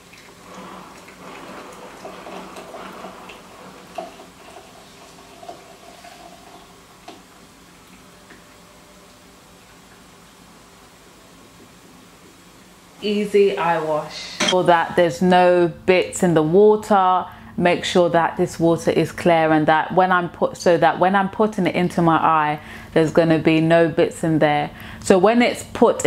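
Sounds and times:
liquid trickling into a jar: 0.0 - 6.8.

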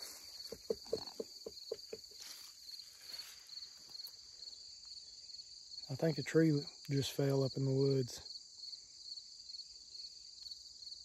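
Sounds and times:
crickets and insects chirping: 0.0 - 11.0
rustles among plants: 2.0 - 4.2.

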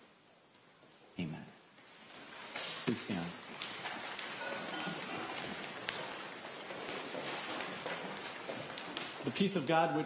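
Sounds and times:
people rustling and shuffling: 0.0 - 10.0.

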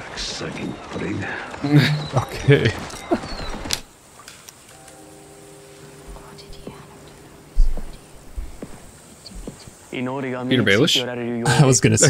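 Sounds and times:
soft low hum: 1.6 - 11.1.

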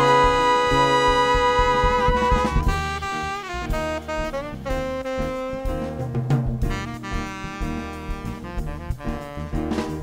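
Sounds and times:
drums: 0.0 - 10.0
jazz horns playing: 0.0 - 10.0.

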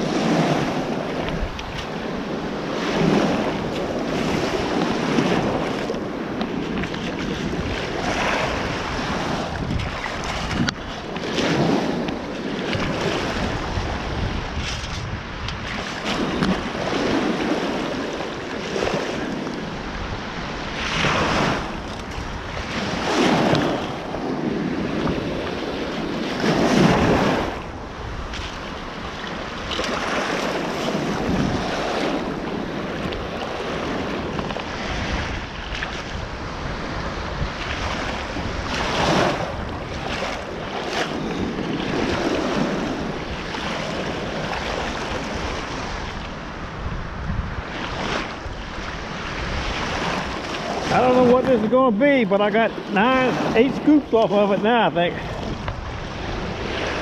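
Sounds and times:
small waves washing on sand: 0.0 - 57.0
wind buffeting microphone: 0.0 - 57.0.

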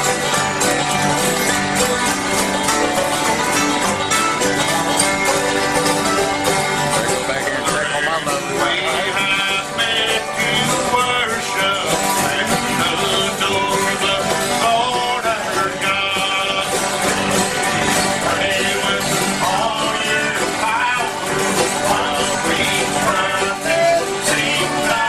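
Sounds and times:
banjo: 0.0 - 25.0
strummed acoustic guitars: 0.0 - 25.0.

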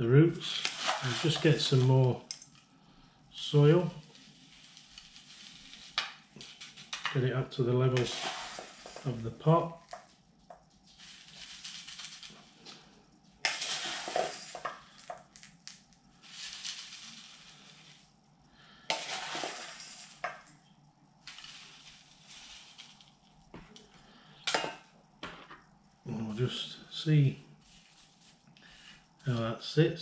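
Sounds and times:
gritty soil pouring into pot: 0.4 - 2.2, 3.5 - 7.0, 7.9 - 12.7, 13.4 - 18.1, 18.8 - 20.5, 21.2 - 23.3.

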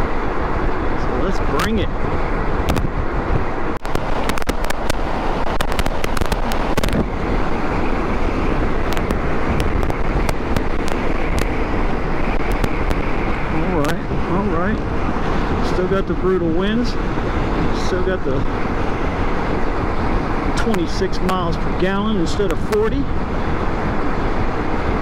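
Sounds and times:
motorcycle road noise: 0.0 - 25.0
wind buffeting microphone: 0.0 - 25.0.

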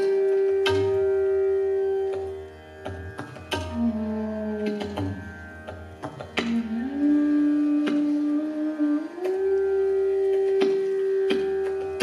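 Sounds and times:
bamboo flute long note: 0.0 - 2.5, 3.5 - 5.3, 6.4 - 12.0.

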